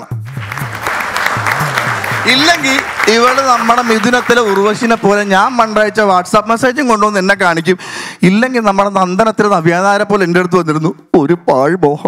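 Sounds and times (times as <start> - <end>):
background music: 0.0 - 6.5
audience applauding: 0.2 - 5.9.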